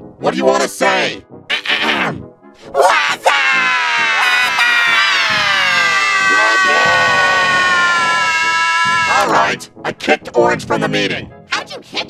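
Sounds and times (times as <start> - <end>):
pitch-shifted cartoon voice: 1.5 - 7.0.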